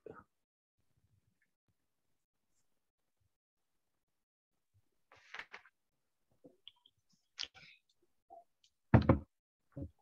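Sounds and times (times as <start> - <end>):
faint small noises: 0.0 - 8.9.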